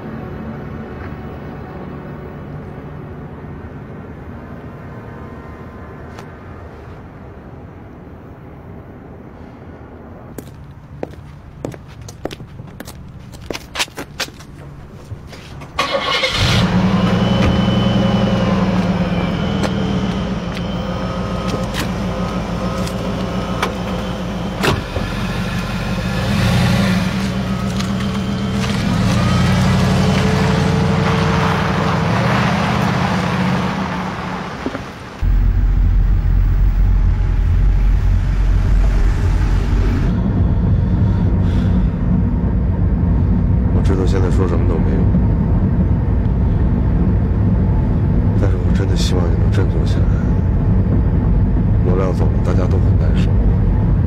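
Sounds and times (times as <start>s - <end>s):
car engine pulling away: 15.8s - 43.7s
heavy low rumble: 34.7s - 54.0s.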